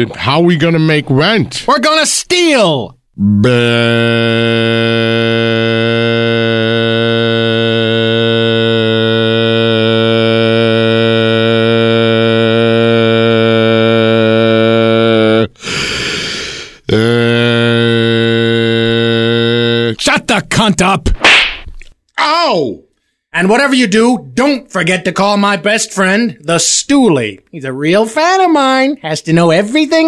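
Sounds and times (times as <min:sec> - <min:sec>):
man singing long low note: 0:03.2 - 0:15.5, 0:16.9 - 0:20.0
man gasping for breath: 0:15.6 - 0:16.9.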